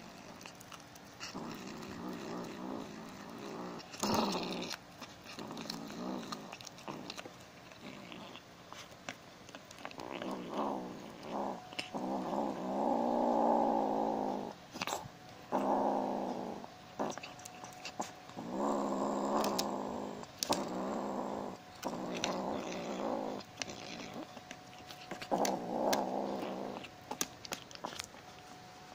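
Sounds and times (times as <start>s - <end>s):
kitten growling: 0.0s - 8.9s, 9.7s - 28.2s.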